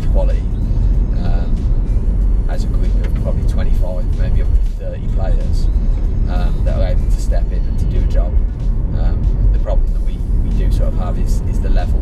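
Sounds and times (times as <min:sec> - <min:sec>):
man talking: 0:00.0 - 0:00.5, 0:01.2 - 0:01.7, 0:02.5 - 0:12.0
car road and engine rumble: 0:00.0 - 0:12.0.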